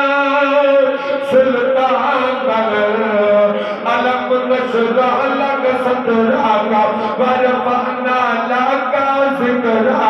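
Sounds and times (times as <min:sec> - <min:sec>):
man chanting through microphone: 0:00.0 - 0:10.0.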